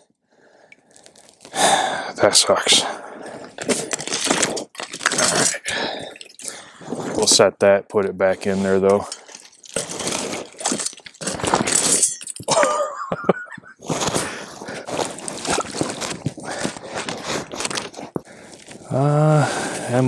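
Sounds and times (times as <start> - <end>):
thin ice and sticks crunching: 0.8 - 1.6, 3.3 - 7.2, 8.4 - 12.8, 13.8 - 18.9.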